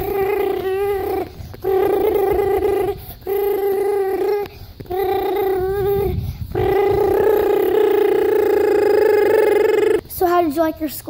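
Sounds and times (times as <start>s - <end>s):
child imitating car engine: 0.0s - 10.6s.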